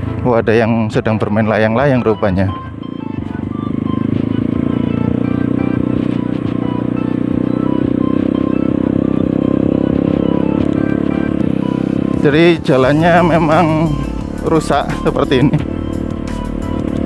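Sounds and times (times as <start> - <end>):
background music: 0.0 - 17.0
motorcycle engine running: 0.0 - 17.0.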